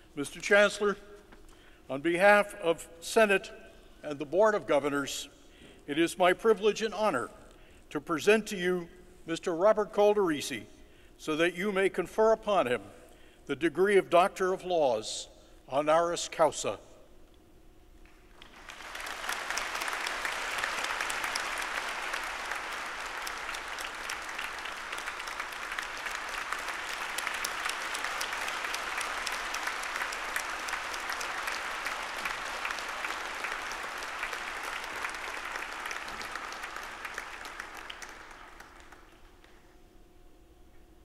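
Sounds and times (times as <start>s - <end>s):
audience clapping: 18.0s - 39.7s.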